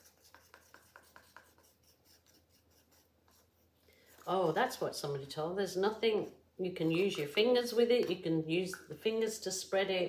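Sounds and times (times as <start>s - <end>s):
wooden stick scraping plastic cup: 0.0s - 4.8s.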